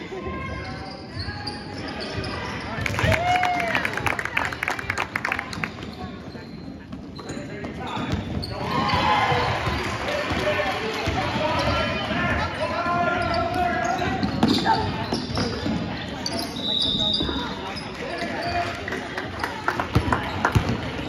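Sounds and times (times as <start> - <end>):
players and spectators shouting: 8.5 - 14.4.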